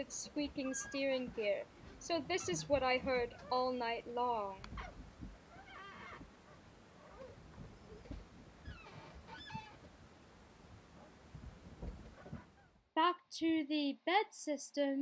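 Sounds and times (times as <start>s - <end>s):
steering cables squeaking: 0.5s - 3.7s.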